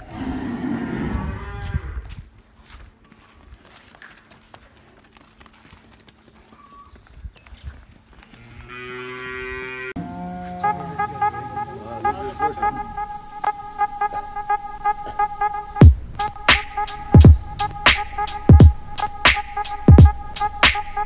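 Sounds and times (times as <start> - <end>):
bull bellowing loudly: 8.6 - 13.1.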